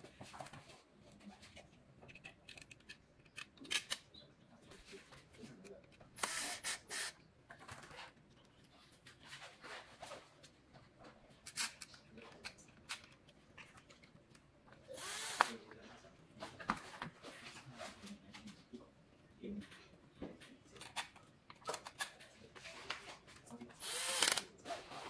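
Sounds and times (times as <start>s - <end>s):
rustling noise: 7.6s - 12.3s.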